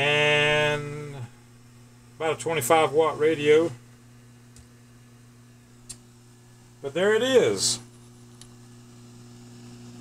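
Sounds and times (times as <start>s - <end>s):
cooling fan humming: 0.0s - 10.0s.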